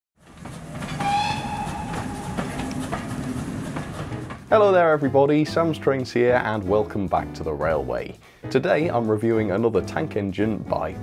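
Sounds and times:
train rumbling and clicking: 0.2s - 7.3s
train whistle blowing: 0.9s - 3.2s.

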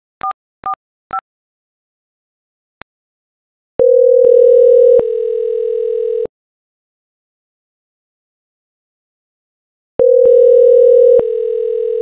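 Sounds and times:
telephone ringback tone: 3.8s - 6.3s, 10.0s - 12.0s.

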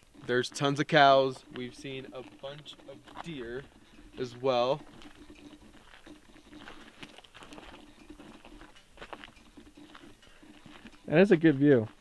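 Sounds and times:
crunching and ticking on gravel: 0.0s - 12.0s.

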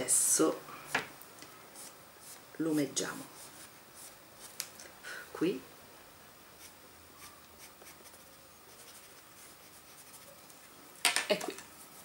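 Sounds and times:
pastel scratching on card: 6.6s - 10.4s.

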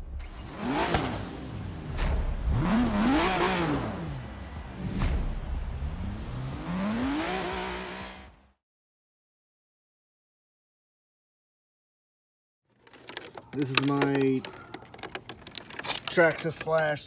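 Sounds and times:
car engine revving: 0.0s - 8.6s.

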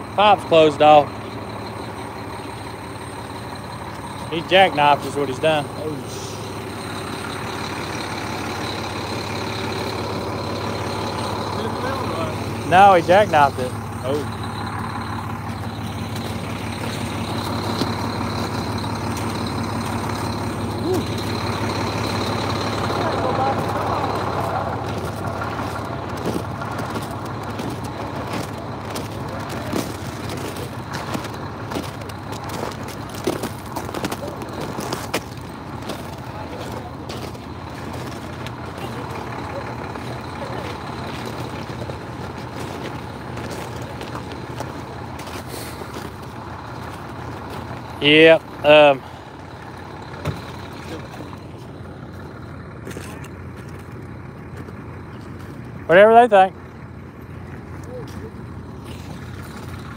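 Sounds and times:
diesel truck engine idling: 0.0s - 59.9s.

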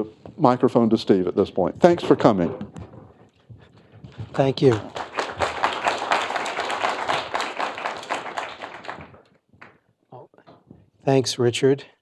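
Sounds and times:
audience applause: 4.3s - 9.3s.

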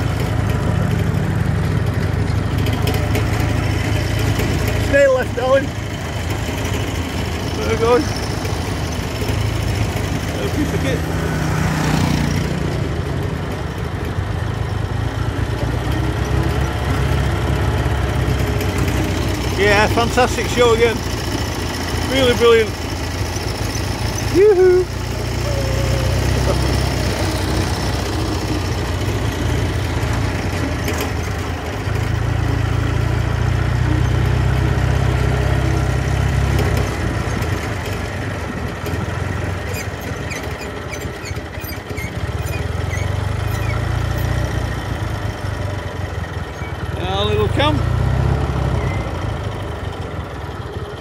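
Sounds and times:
small vehicle engine droning: 0.0s - 51.0s.

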